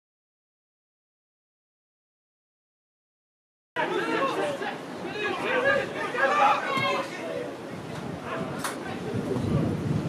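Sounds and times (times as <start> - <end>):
people shouting and talking: 3.8 - 9.9.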